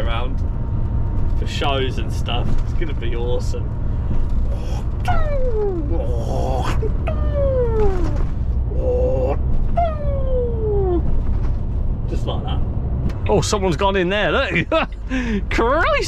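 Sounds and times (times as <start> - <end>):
lorry engine rumble: 0.0 - 16.0
road noise: 0.0 - 16.0
man wailing: 5.1 - 8.1, 8.7 - 11.0.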